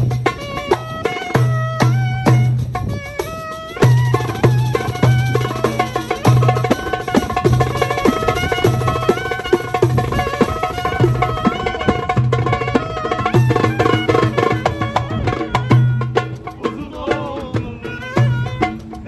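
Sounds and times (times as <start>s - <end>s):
busy hand-drum rhythm: 0.0s - 19.0s
ornamented sliding melody: 0.0s - 19.0s.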